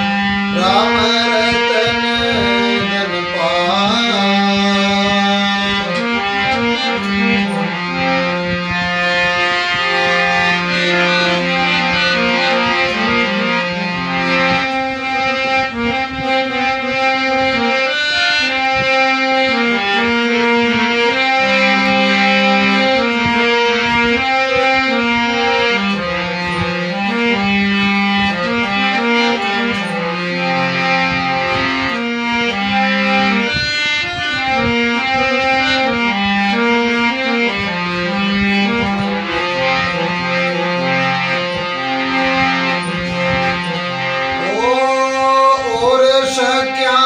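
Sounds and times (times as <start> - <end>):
harmonium melody: 0.0 - 47.0
man singing: 0.5 - 6.1, 44.4 - 47.0.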